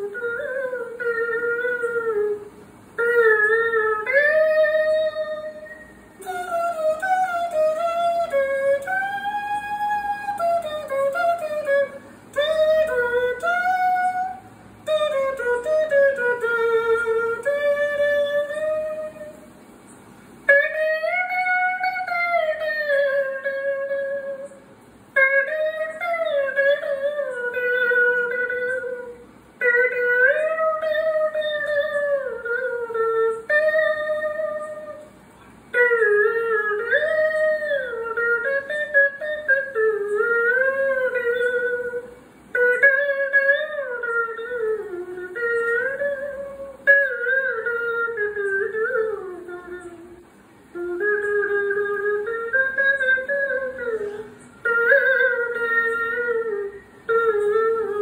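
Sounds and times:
faint accompaniment: 0.0s - 58.0s
high solo voice singing: 35.7s - 58.0s.

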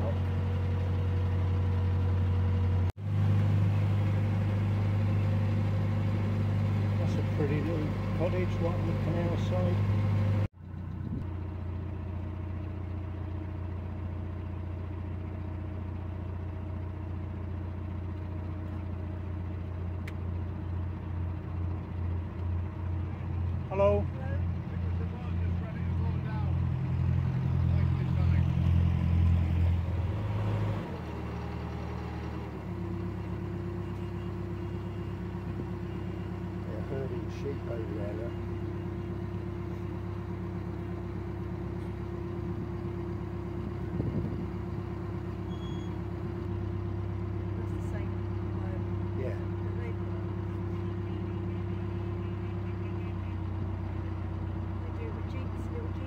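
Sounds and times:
diesel engine running: 0.0s - 56.0s.

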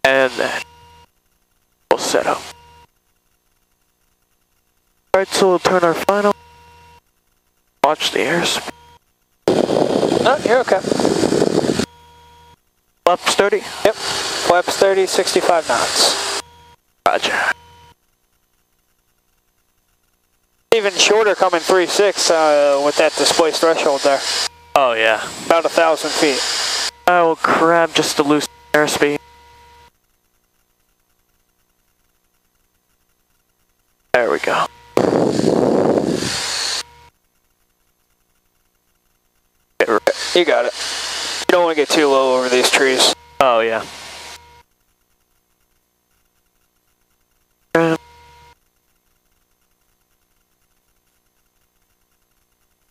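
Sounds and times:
faint electrical hum: 0.0s - 52.9s
aircraft engine and airflow roar: 9.5s - 11.8s, 20.9s - 24.4s
hissing noise over intercom: 9.5s - 11.9s, 13.1s - 16.4s, 17.1s - 17.6s, 20.7s - 29.2s, 34.1s - 36.9s, 39.8s - 44.4s, 47.8s - 48.0s.

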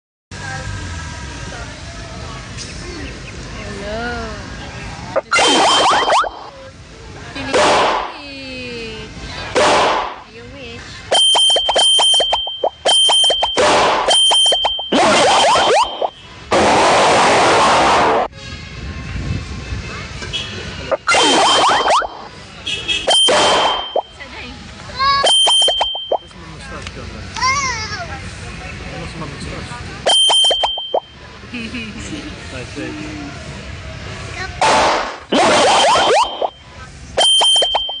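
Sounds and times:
rising boing-like sweeps: 5.2s - 6.5s
held high tone: 5.2s - 6.6s, 11.1s - 16.2s, 20.9s - 22.3s, 23.1s - 24.2s, 25.2s - 26.3s, 30.1s - 31.2s, 35.3s - 36.6s, 37.2s - 38.0s.

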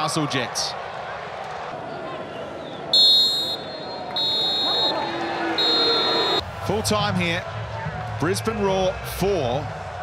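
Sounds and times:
referee's whistle blasts: 3.0s - 6.4s.

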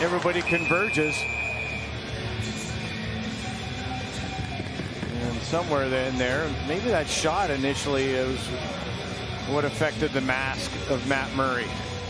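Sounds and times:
faint music over loudspeakers: 0.0s - 12.0s.

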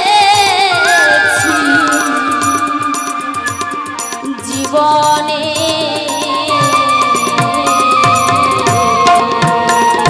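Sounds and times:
brisk drum beat: 0.0s - 10.0s.

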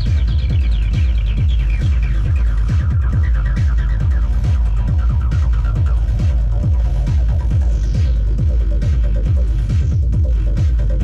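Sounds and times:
dark electronic dance music: 0.0s - 11.0s
deep kick and bass beat: 0.0s - 11.0s
rapid falling synth pattern: 0.0s - 11.0s.

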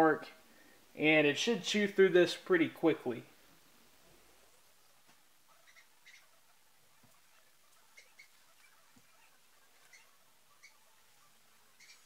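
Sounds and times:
faint high-pitched chirps: 5.4s - 12.0s.

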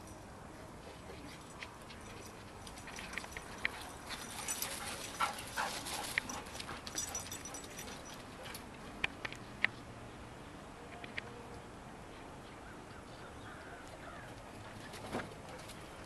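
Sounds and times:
dogs playing: 0.8s - 9.0s, 13.8s - 16.0s.

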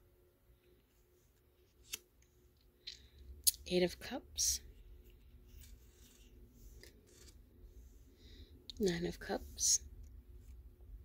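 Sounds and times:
card rustle: 4.9s - 7.4s.

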